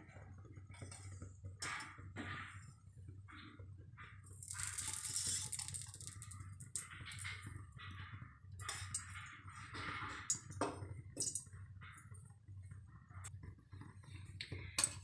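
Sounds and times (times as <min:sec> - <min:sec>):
metal spoon scraping a pan: 0:04.5 - 0:06.2, 0:08.6 - 0:10.5.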